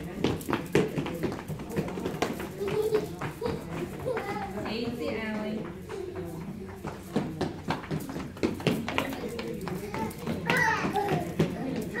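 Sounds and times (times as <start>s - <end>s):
footfalls on hard floor: 0.0s - 12.0s
children calling out: 9.8s - 12.0s.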